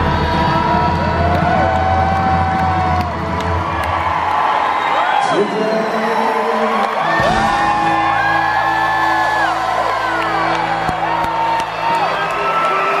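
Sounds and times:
crowd whooping and cheering: 0.0s - 13.0s.

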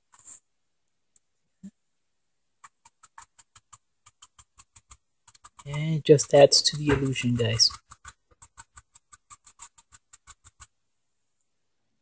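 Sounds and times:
sponge dabbing taps: 2.6s - 10.8s.

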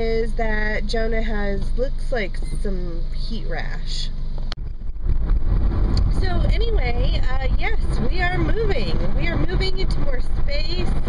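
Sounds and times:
car interior rumble while driving: 0.0s - 11.0s.

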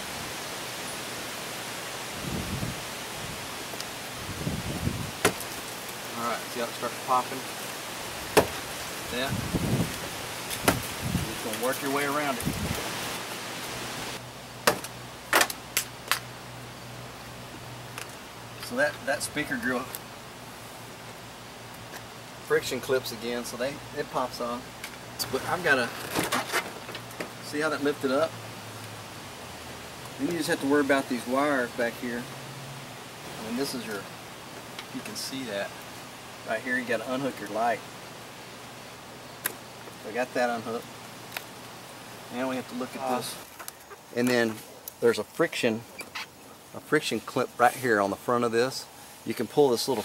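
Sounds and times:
background hiss: 0.0s - 50.0s.

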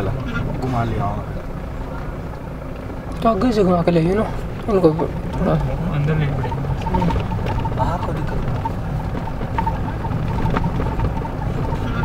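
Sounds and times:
vehicle engine low rumble: 0.0s - 12.0s.

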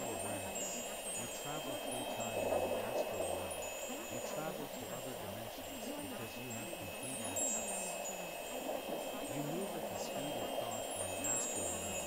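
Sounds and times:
faint wavering voice: 0.0s - 12.0s
soft continuous wash: 0.0s - 12.0s
wind chimes tinkling: 0.0s - 12.0s.

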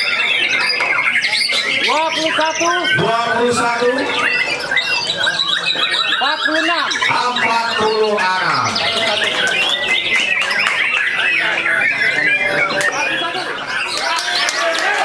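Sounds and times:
birds singing whistles and chirps: 0.0s - 14.5s
people's voices: 0.0s - 15.0s.

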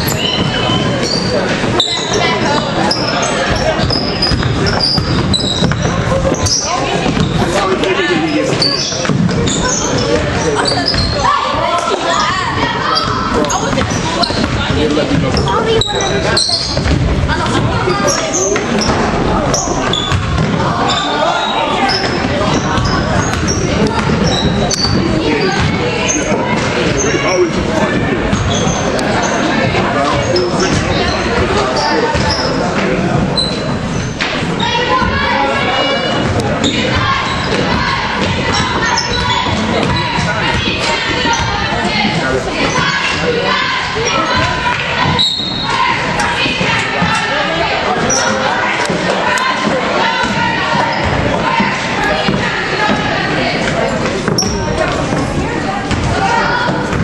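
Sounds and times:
sneaker squeaks: 0.0s - 47.3s, 47.9s - 57.0s
people calling out and talking: 0.0s - 57.0s
basketball bouncing on wooden floor: 3.8s - 7.4s, 22.0s - 25.8s.

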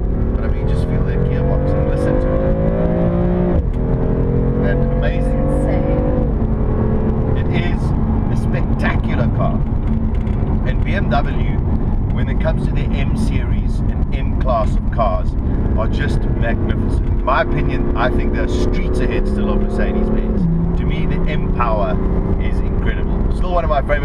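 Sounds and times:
car engine accelerating: 0.0s - 24.0s
road rumble: 0.0s - 24.0s.

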